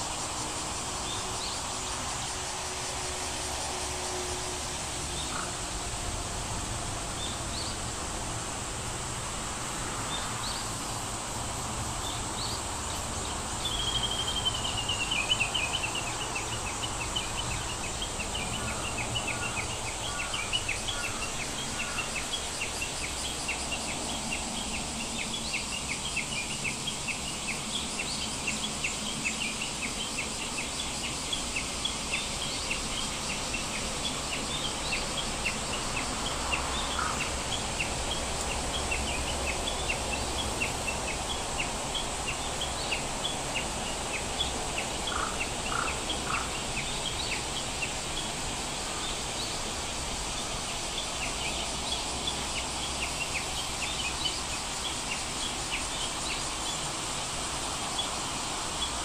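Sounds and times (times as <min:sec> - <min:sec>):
low steady background noise: 0:00.0 - 0:59.0
birds chirping: 0:13.3 - 0:48.3.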